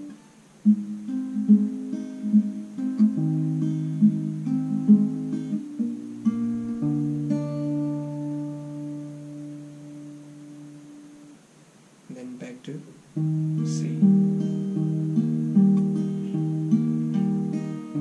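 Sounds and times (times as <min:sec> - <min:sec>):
fingerpicked acoustic guitar: 0:00.0 - 0:18.0.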